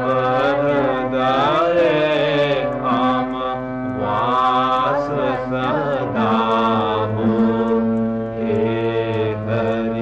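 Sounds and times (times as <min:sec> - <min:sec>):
steady held drone: 0:00.0 - 0:10.0
wavering sung melody: 0:00.0 - 0:10.0.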